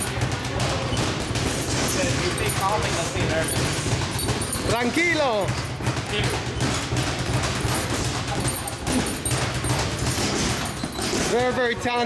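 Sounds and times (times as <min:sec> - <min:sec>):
punches thudding on heavy bags: 0:00.0 - 0:12.0.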